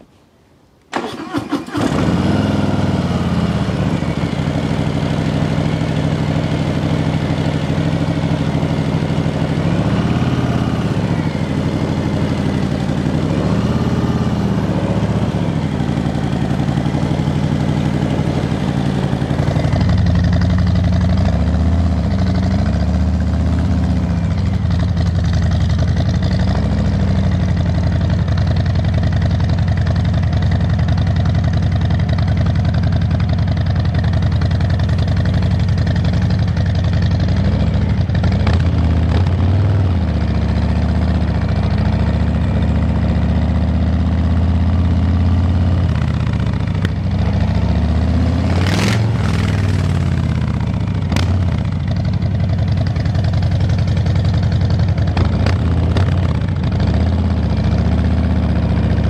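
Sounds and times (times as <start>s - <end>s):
motorcycle engine idling loudly: 1.7s - 59.0s
motorcycle throttle blips: 45.8s - 57.6s.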